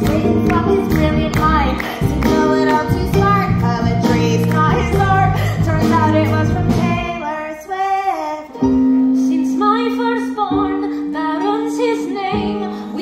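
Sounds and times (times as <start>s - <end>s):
women singing into microphones: 9.2s - 13.0s.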